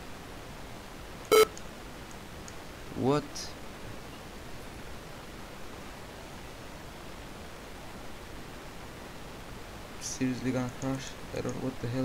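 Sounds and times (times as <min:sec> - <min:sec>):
electronic beep: 0:01.3 - 0:01.5.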